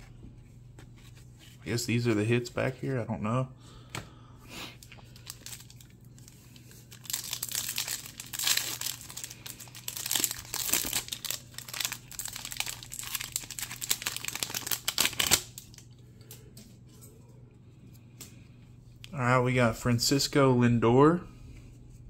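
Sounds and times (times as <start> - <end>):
card pack wrapper crinkling and tearing: 4.8 - 16.0.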